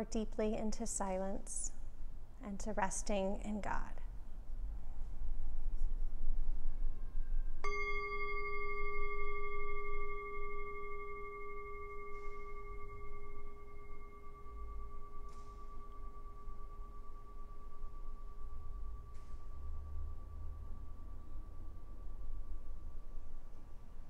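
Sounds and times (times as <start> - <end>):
metal singing bowl ringing: 7.6 - 23.6.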